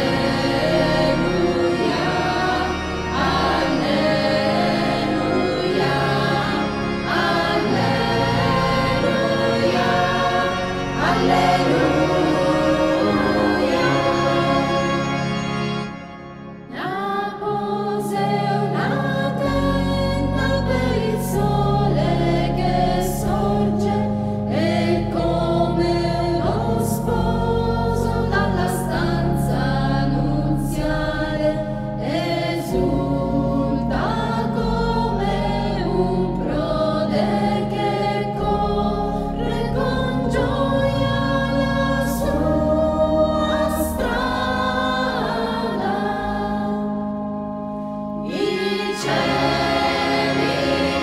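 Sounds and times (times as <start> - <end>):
choir singing a hymn: 0.0 - 51.0
instrumental accompaniment: 0.0 - 51.0.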